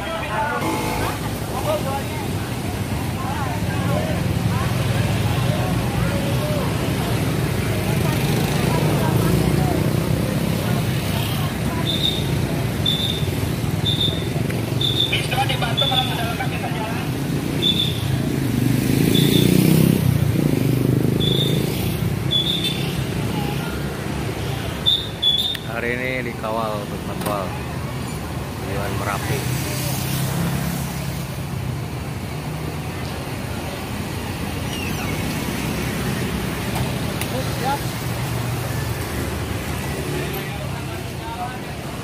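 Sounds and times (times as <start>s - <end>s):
people talking: 0.0s - 13.1s, 15.1s - 17.2s
street traffic: 0.0s - 42.0s.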